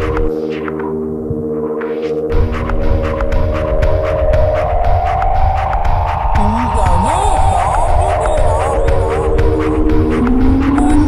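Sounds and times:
experimental electronic music: 0:00.0 - 0:11.0
heavy bass pulse: 0:02.3 - 0:11.0
gliding warbling synth tones: 0:06.4 - 0:11.0.

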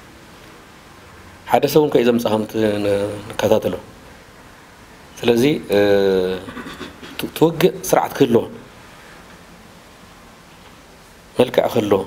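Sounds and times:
man speaking: 0:01.5 - 0:03.9, 0:05.2 - 0:06.6, 0:07.2 - 0:08.7, 0:11.4 - 0:12.0.

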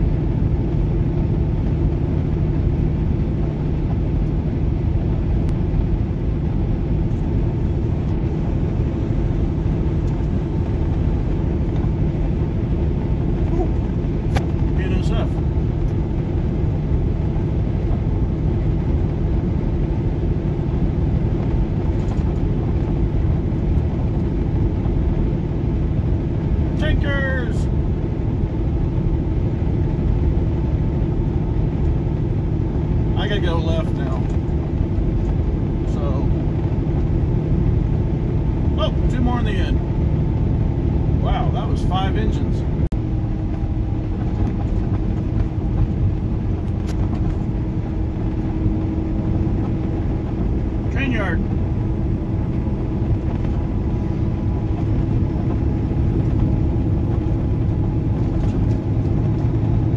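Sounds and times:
car road and engine noise: 0:00.0 - 0:59.9
low hum: 0:00.0 - 0:59.9.

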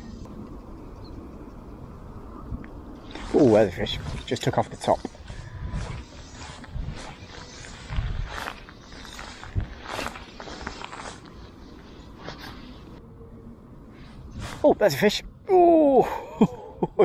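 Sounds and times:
wind buffeting microphone: 0:00.2 - 0:11.2.

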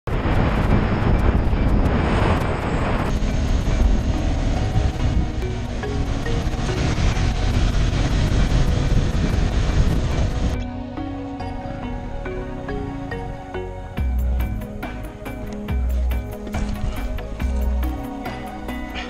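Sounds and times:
wind rushing over microphone: 0:00.1 - 0:19.0
background music with beat: 0:03.1 - 0:19.0.

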